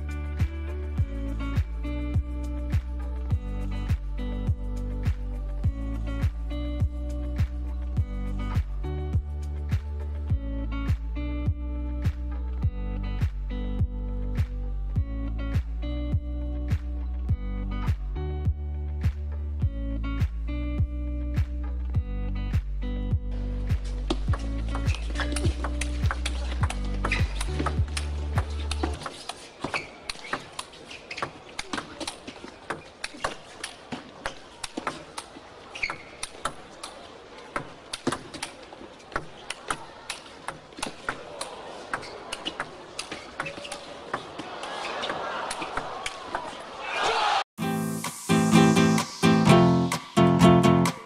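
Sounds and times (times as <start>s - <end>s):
background music: 0.0s - 29.0s, 47.6s - 51.0s
crowd noise: 23.4s - 47.5s.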